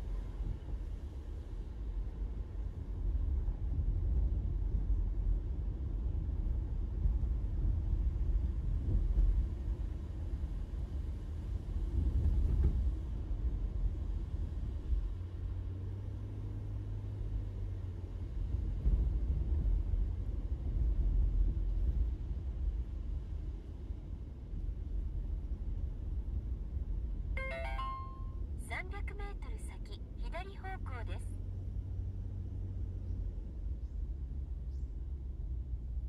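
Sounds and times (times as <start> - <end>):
road and engine rumble in car: 0.0 - 36.0.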